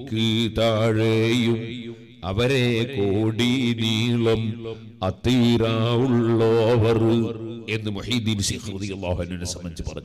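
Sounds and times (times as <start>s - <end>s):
man chanting through microphone: 0.0s - 10.0s.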